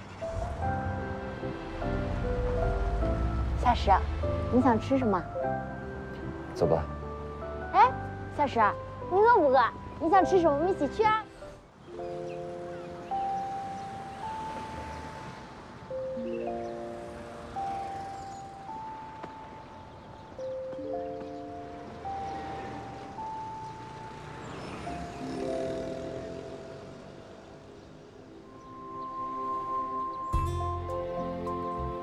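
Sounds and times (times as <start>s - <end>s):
gentle background music: 0.0s - 32.0s.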